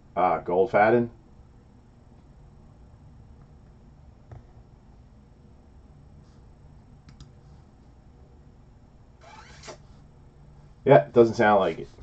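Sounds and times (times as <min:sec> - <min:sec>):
computer mouse clicks: 0:07.0 - 0:07.4.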